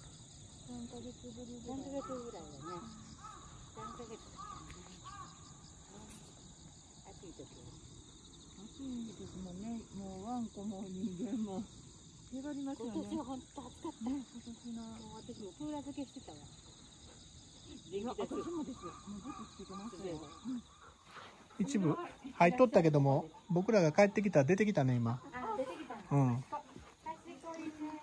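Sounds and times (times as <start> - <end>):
high insect chirring: 0.0 - 28.0
people talking: 0.7 - 3.0, 7.1 - 7.8, 8.6 - 11.7, 12.3 - 16.5, 17.8 - 20.6, 25.4 - 28.0.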